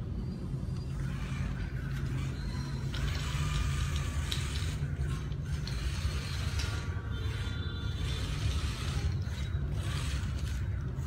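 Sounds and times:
small electric gear motors whirring: 0:00.0 - 0:11.0
steady low hum: 0:00.0 - 0:11.0.

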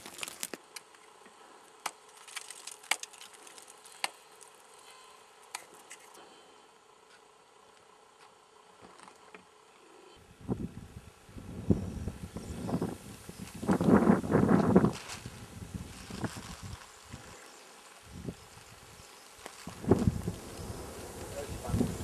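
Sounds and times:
wind gusting on microphone: 0:10.3 - 0:17.3, 0:19.6 - 0:22.0.

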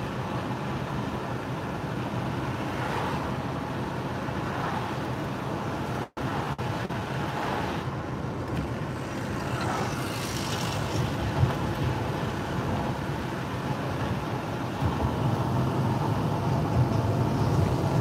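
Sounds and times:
tyres on the road: 0:00.0 - 0:18.0.

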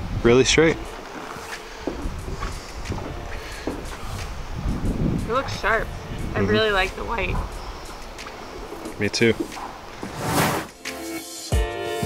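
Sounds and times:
wind buffeting microphone: 0:00.0 - 0:10.2
faint light knocks: 0:01.0 - 0:04.3.

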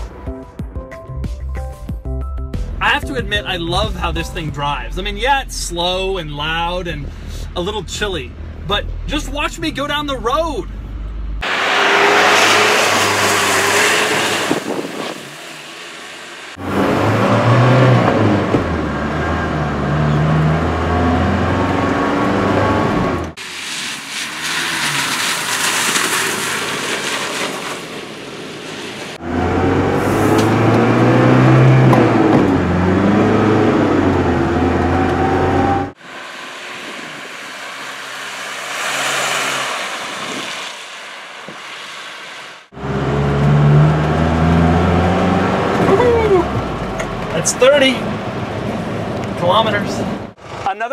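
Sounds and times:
road and wind noise: 0:02.7 - 0:50.9
diesel engine accelerating: 0:02.8 - 0:42.0, 0:42.6 - 0:50.9.

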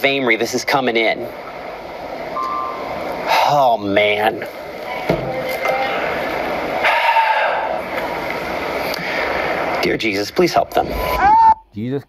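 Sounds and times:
tv broadcast hiss: 0:00.0 - 0:12.0
faint short tone: 0:02.4 - 0:02.9.

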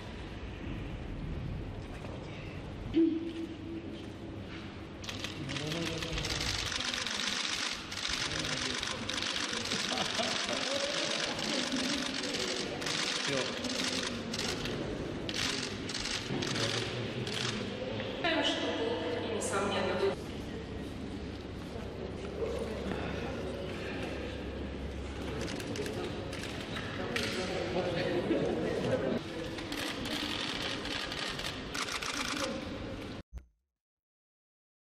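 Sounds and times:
murmur of people in a hall: 0:00.0 - 0:33.2
camera shutters firing in bursts: 0:05.0 - 0:17.7, 0:29.6 - 0:32.6.

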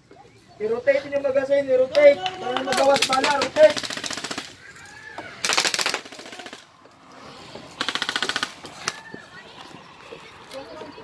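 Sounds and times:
airsoft rifles firing bursts: 0:02.4 - 0:04.7, 0:05.4 - 0:06.8, 0:07.8 - 0:09.1.

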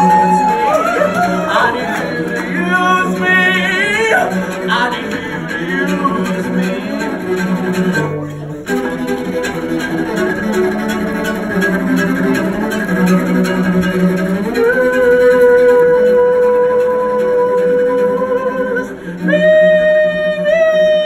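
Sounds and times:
wordless singing: 0:00.0 - 0:07.4
solo cello: 0:00.0 - 0:21.0.

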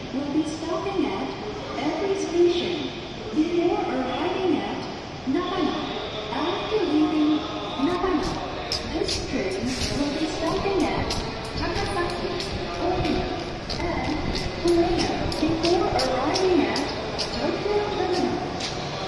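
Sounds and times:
public address announcement: 0:00.0 - 0:19.0.

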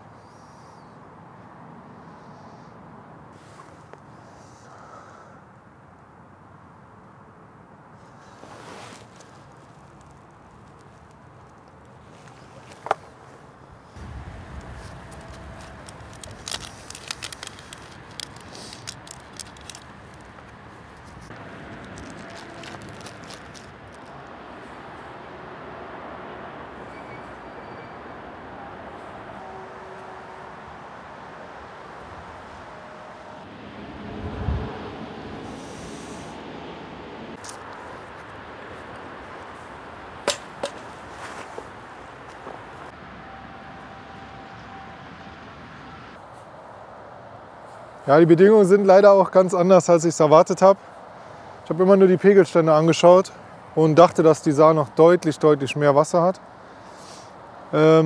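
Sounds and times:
wind noise: 0:13.8 - 0:24.3, 0:31.6 - 0:43.0.

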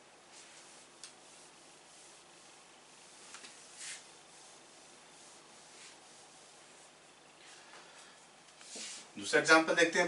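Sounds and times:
quiet steady hiss: 0:00.0 - 0:10.0
marker drawing on whiteboard: 0:00.3 - 0:07.0.

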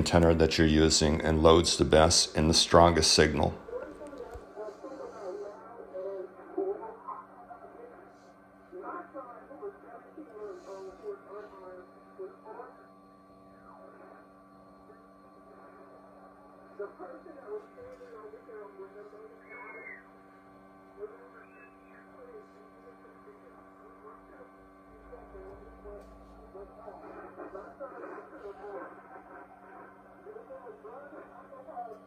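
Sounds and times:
faint radio speech: 0:00.0 - 0:32.0.

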